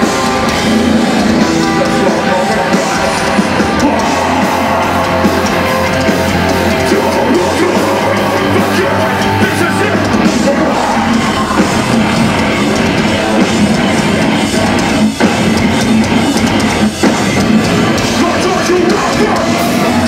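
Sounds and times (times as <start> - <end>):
metalcore band playing live: 0.0 - 20.0.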